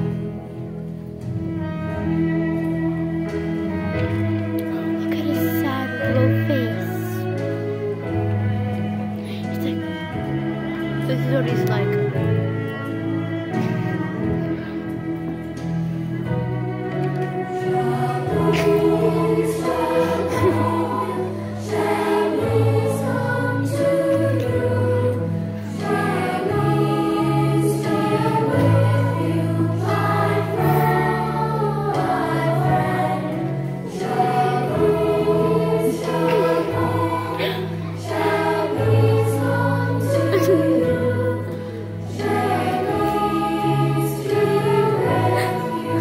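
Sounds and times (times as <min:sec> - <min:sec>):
children's choir singing: 0:00.0 - 0:46.0
instrumental accompaniment with bass: 0:00.0 - 0:46.0.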